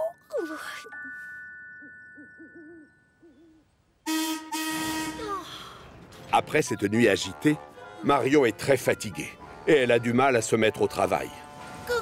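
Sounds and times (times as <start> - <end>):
steam whistle blowing: 4.1 - 5.2.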